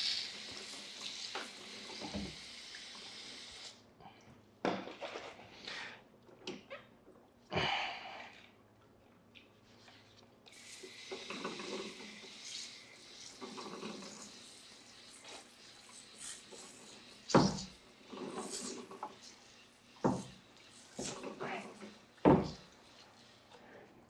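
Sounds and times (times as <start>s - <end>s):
sprayer hissing water: 0.0s - 3.8s, 10.5s - 23.5s.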